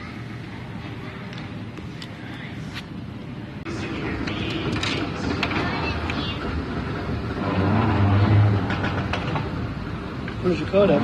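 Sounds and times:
busy airport concourse noise: 0.0 - 11.0.

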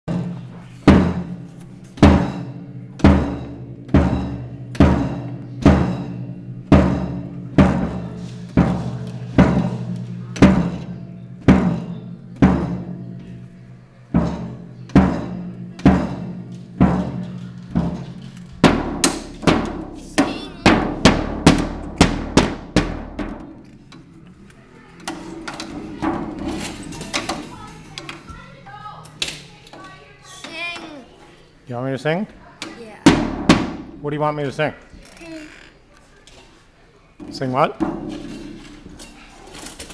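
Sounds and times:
drum kit strikes: 0.1 - 13.3, 14.1 - 23.6, 25.1 - 28.3, 33.0 - 34.0, 37.8 - 39.3.

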